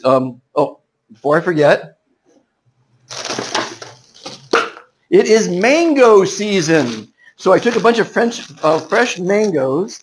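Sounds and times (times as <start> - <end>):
plastic bag crinkling: 3.1 - 4.6.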